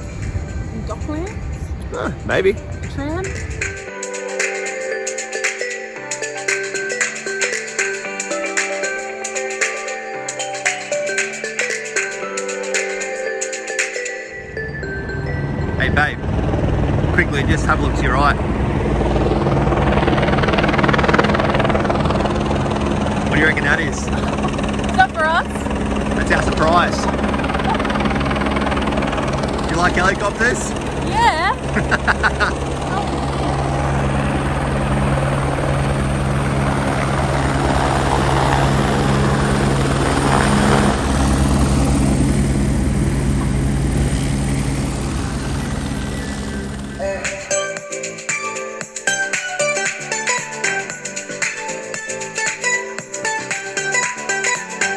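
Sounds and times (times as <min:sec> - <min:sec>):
helicopter engine drone: 0:00.0 - 0:54.9
helicopter rotor beating: 0:00.0 - 0:54.9.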